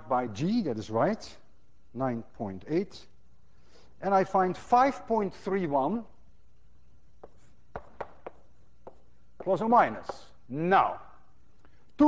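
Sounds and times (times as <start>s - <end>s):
faint room hum: 0.0s - 12.0s
chalk tapping on blackboard: 7.2s - 10.4s.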